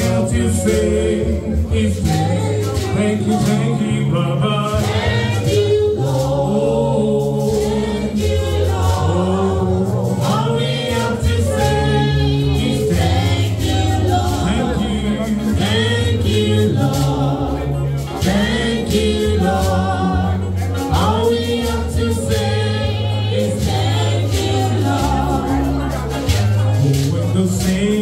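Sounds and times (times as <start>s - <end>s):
percussion: 0.0s - 28.0s
steady bass line: 0.0s - 28.0s
voices singing together: 0.0s - 28.0s.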